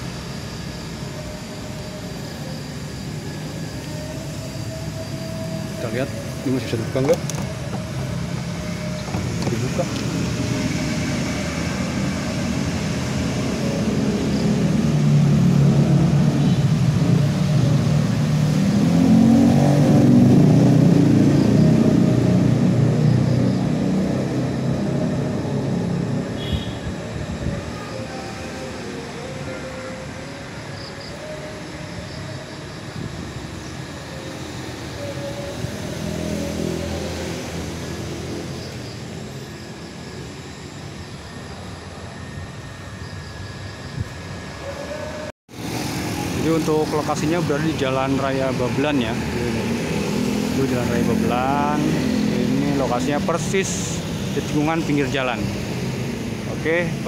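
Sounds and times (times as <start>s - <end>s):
motor vehicles passing: 5.2s - 29.3s, 32.9s - 40.8s, 44.6s - 57.0s.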